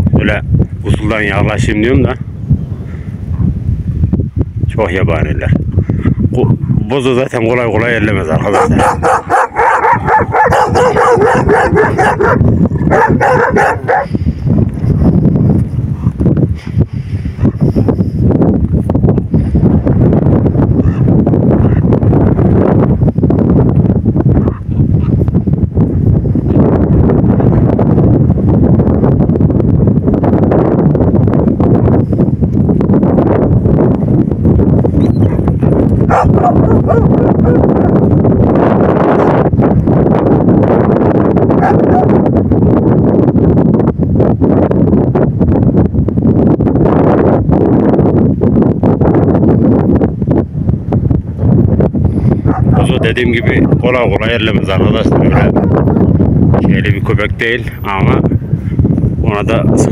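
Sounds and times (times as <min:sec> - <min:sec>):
wind buffeting microphone: 0:00.0 - 0:59.9
dogs barking and yipping: 0:08.4 - 0:14.2, 0:35.1 - 0:38.0, 0:41.6 - 0:42.2, 0:52.4 - 0:53.5.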